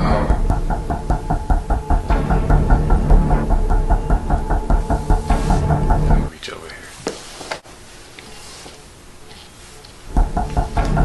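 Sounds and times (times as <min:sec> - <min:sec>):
background music with pulsing beat: 0:00.0 - 0:06.3, 0:10.1 - 0:11.0
faint room noise: 0:00.0 - 0:11.0.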